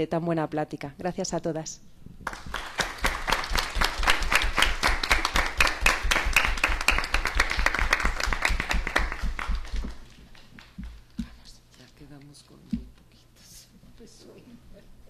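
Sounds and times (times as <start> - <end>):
audience applauding: 2.2 - 10.8.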